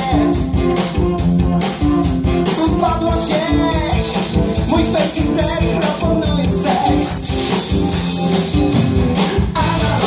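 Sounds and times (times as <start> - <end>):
bass guitar: 0.0 - 10.0
drums: 0.0 - 10.0
electric guitars: 0.0 - 10.0.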